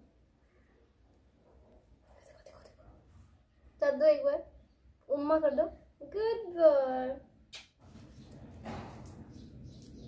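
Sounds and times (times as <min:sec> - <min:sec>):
faint whisper: 0:02.0 - 0:03.1.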